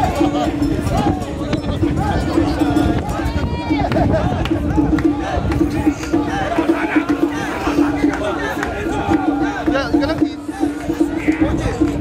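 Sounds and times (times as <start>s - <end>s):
crowd chanting rhythmically: 0.0s - 12.0s
people shouting: 0.0s - 12.0s.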